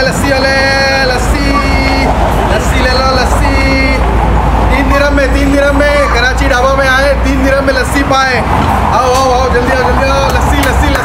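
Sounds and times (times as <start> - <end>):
man calling out sing-song: 0.0 - 11.0.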